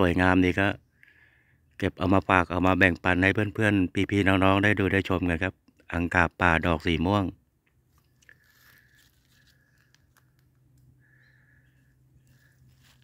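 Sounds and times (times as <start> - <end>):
man speaking: 0.0 - 0.8, 1.8 - 7.4.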